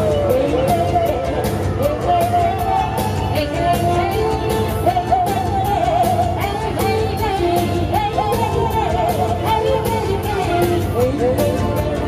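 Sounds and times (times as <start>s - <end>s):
backing music with steady beat: 0.0s - 12.0s
woman singing pop song: 0.0s - 12.0s.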